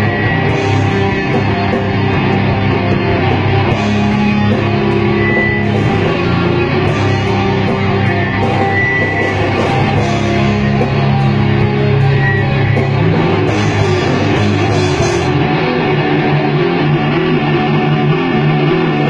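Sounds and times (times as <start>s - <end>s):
drum kit: 0.0s - 17.1s
bass guitar: 0.0s - 19.0s
distorted electric guitars: 0.0s - 19.0s.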